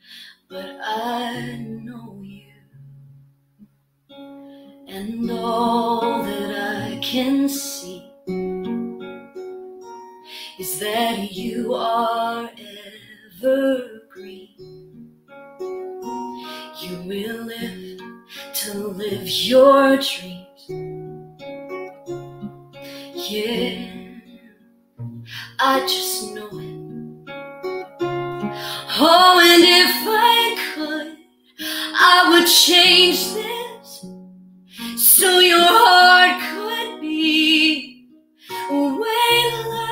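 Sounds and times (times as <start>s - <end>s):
woman singing a ballad: 0.1s - 2.7s, 4.8s - 8.1s, 10.3s - 14.7s, 16.4s - 20.8s, 22.8s - 24.6s, 25.3s - 26.9s, 28.5s - 34.1s, 34.8s - 39.9s
acoustic guitar plucked: 0.5s - 39.9s.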